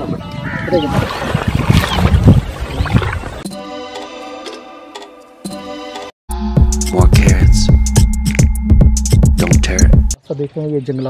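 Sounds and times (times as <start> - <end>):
water sloshing and splashing: 0.8 - 3.4
background music with held chords: 3.5 - 10.2.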